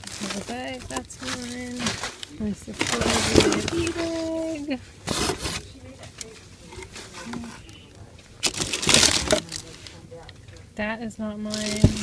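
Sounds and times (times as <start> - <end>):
paper and plastic wrap rustling: 0.0 - 10.6, 11.4 - 12.0.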